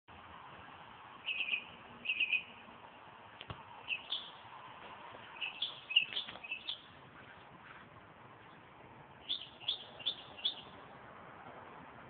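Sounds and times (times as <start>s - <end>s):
bird chirping: 1.2s - 2.6s, 3.8s - 4.5s, 5.2s - 7.8s, 9.2s - 10.8s.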